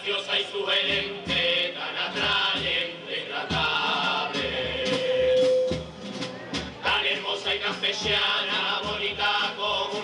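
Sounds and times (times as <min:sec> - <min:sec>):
men singing in chorus: 0:00.0 - 0:05.8, 0:06.8 - 0:10.0
guitar: 0:00.9 - 0:10.0
bass drum: 0:03.5 - 0:10.0.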